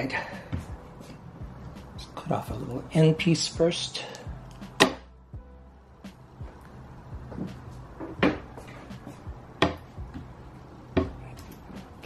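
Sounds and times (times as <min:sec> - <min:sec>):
wooden knocks and clunks: 0:07.2 - 0:11.3.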